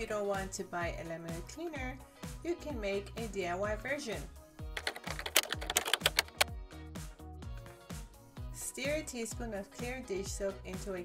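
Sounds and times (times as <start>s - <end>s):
background music: 0.0s - 11.0s
keyboard key clicks: 4.8s - 6.5s.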